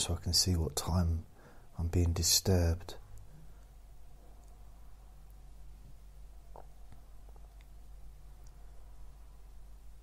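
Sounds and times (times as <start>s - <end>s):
low background hum: 0.0s - 10.0s
faint click: 8.4s - 8.6s.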